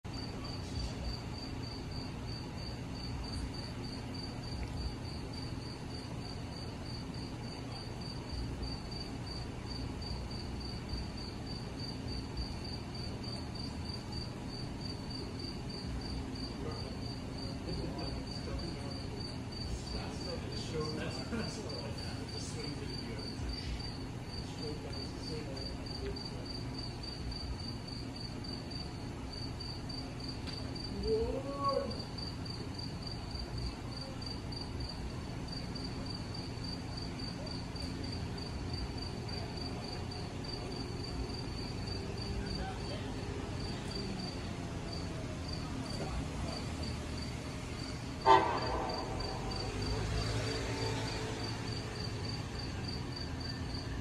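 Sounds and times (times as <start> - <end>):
crickets chirping: 0.1 - 54.0.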